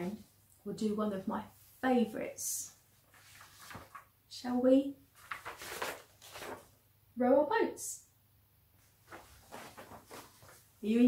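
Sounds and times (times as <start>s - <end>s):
paper card rustling: 3.1s - 4.1s, 5.1s - 6.8s, 8.9s - 10.7s.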